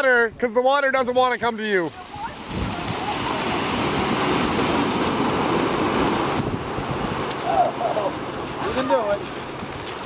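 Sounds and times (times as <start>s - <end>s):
surf breaking on cobbles: 1.8s - 10.0s
wind on microphone: 2.0s - 10.0s.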